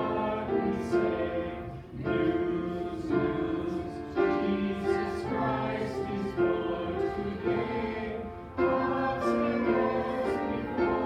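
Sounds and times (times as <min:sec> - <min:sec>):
group singing a slow hymn: 0:00.0 - 0:11.0.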